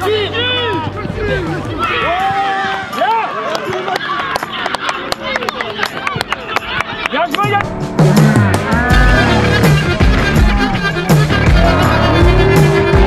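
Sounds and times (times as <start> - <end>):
people shouting excitedly: 0.0 - 3.4, 10.2 - 13.0
music with heavy bass beat: 7.8 - 13.0.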